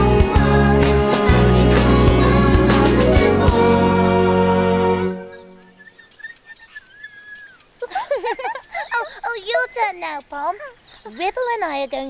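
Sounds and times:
high squeaks and chirps: 5.3 - 12.0.

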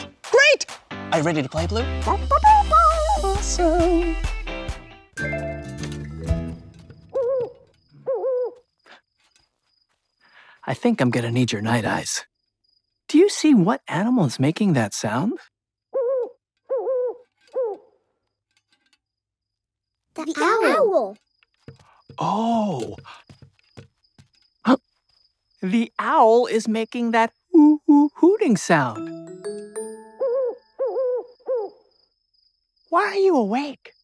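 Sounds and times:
cartoon owl hooting: 2.1 - 4.1, 7.1 - 8.6, 15.9 - 17.9, 29.9 - 31.9
crickets chirping: 6.4 - 34.0.

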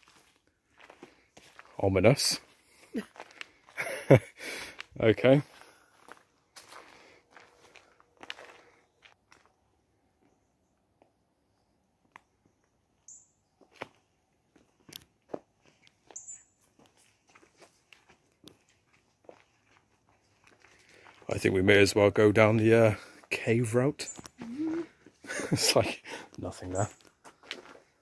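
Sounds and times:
footsteps on gravel path: 0.0 - 4.0, 4.6 - 9.6, 13.6 - 23.3, 26.5 - 28.0.

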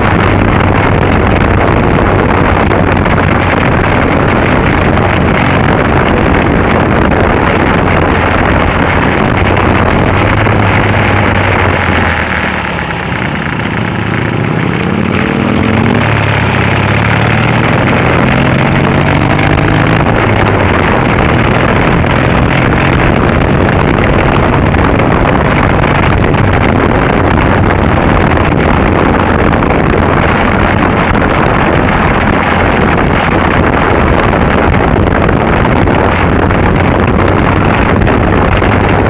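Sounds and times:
motorcycle engine accelerating: 0.0 - 39.0
wind rush: 0.0 - 39.0.

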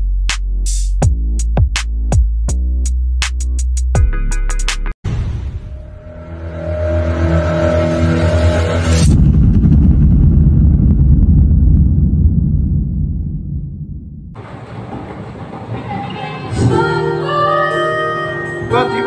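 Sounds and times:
sudden hit: 5.0 - 15.8
steady pitched drone: 5.8 - 14.4
deep vehicle-like rumble: 8.4 - 16.2.

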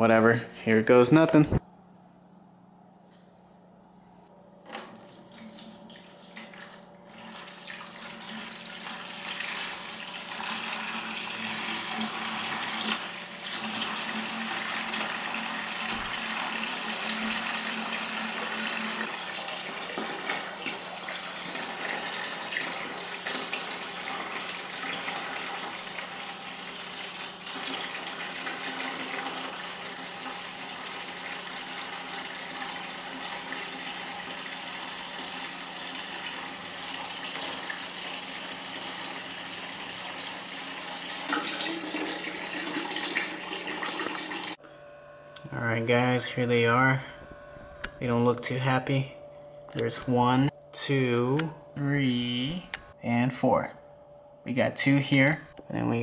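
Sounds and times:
steady low hum: 0.0 - 7.2, 44.6 - 56.0
water pouring into plastic bucket: 39.1 - 44.6.

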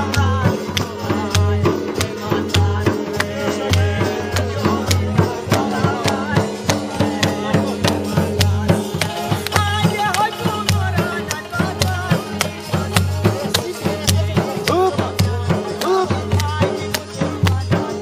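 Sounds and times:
dhol drum beating: 0.0 - 18.0.

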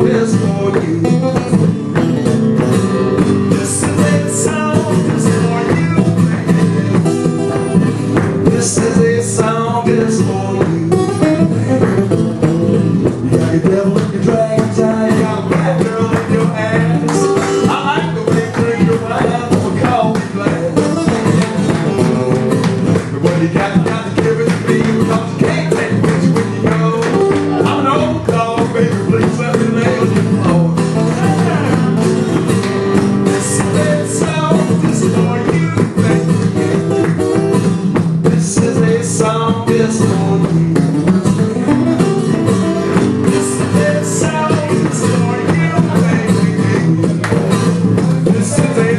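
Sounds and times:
acoustic guitars playing: 0.0 - 48.9.

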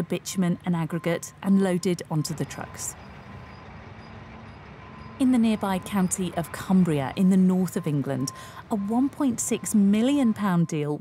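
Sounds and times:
low machinery drone: 0.0 - 10.5.

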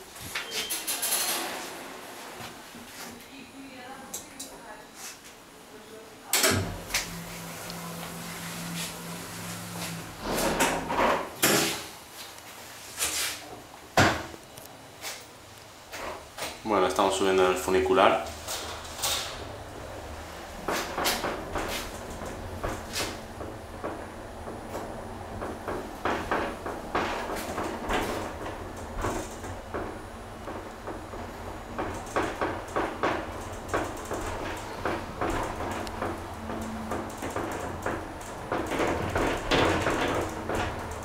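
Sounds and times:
funicular low hum: 6.5 - 10.9, 18.3 - 41.0
clicks knocks and rattles: 20.6 - 41.0.

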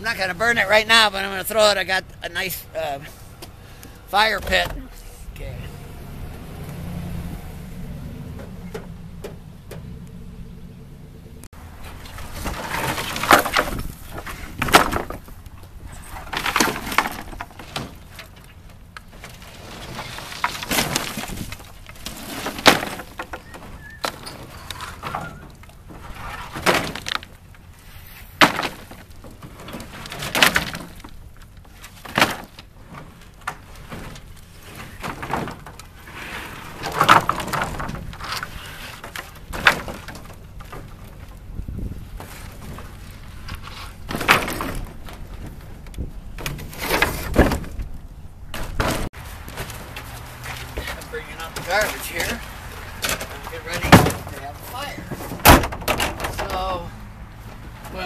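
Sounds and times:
wooden boards clattering on pile: 11.8 - 56.9.

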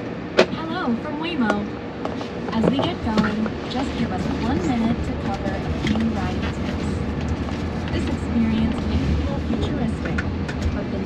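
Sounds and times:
road and tyre noise in car cabin: 0.0 - 11.0.

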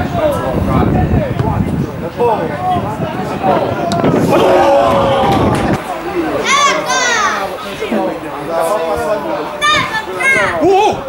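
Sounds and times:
excited shouting voices: 3.5 - 11.0.

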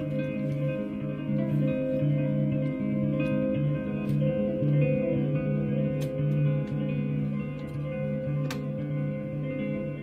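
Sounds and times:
archtop guitar notes and chords: 0.0 - 10.0.

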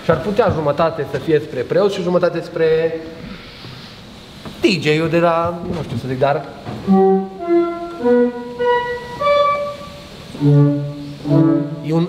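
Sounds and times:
church organ notes stepping upward: 6.4 - 12.0.

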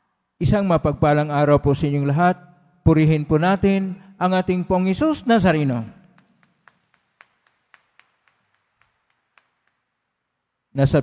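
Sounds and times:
scattered hand claps: 6.0 - 10.2.

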